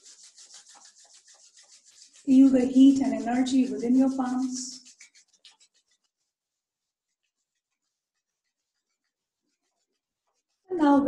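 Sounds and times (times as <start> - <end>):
palms rubbing together: 0.0 - 11.0
woman speaking: 2.3 - 4.8, 10.7 - 11.0.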